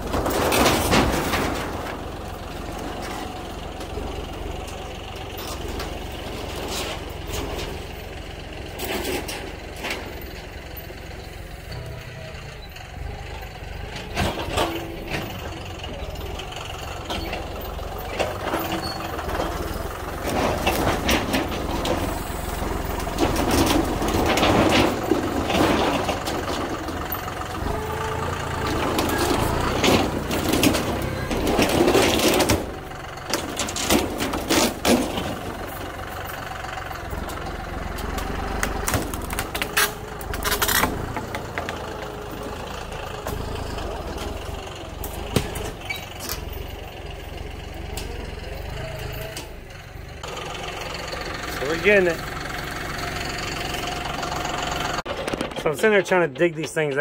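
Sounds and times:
wood cracking and splintering: 0.0s - 4.2s, 17.5s - 36.1s, 37.2s - 46.5s
metal roofing banging and scraping: 0.0s - 10.5s, 13.6s - 49.6s, 53.6s - 57.0s
tractor diesel engine running: 0.0s - 57.0s.

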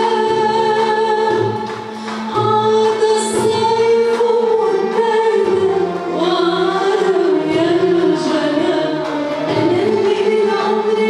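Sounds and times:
orchestra strings: 0.0s - 11.0s
woman singing: 0.0s - 11.0s.

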